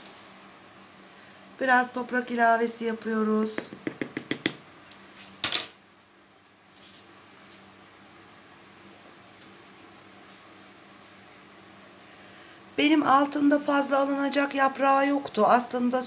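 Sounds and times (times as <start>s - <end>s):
faint steady hum: 0.0s - 16.0s.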